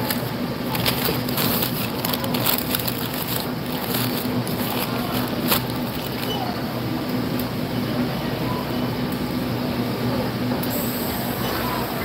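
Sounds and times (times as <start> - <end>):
crackles and rustles: 0.0 - 6.6
steady low hum: 0.0 - 11.4.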